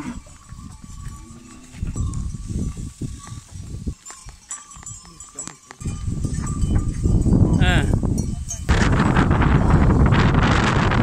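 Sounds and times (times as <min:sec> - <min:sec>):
wind buffeting microphone: 0:00.0 - 0:05.0, 0:05.8 - 0:11.0.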